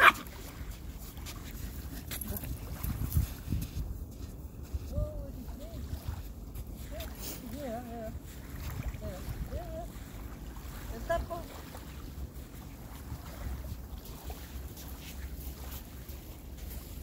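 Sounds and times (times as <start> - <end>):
wind rumbling on microphone: 1.7 - 14.9.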